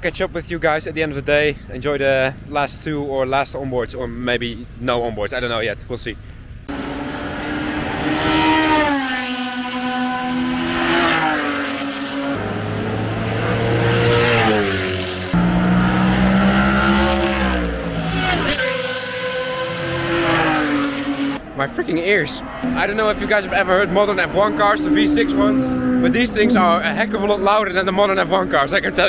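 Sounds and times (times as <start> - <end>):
race cars passing at high revs: 6.7 - 29.0.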